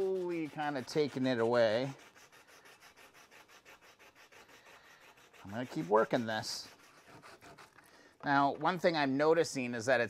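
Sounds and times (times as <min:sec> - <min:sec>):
foil scrubbing rusty chrome: 0:00.0 - 0:07.8.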